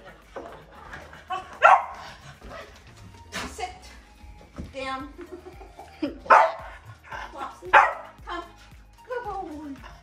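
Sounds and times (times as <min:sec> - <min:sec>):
puppy barking: 0:01.6 - 0:02.7, 0:06.3 - 0:06.7, 0:07.7 - 0:08.2.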